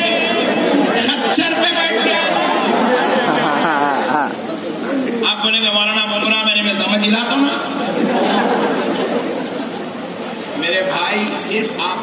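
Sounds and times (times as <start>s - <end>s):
men talking through microphones: 0.0s - 12.0s.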